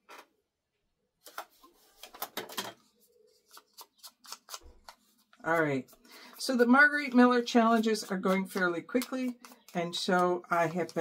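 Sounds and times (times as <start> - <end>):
paper rustling: 1.2 - 11.0
craft supplies clicking and tapping: 7.0 - 11.0.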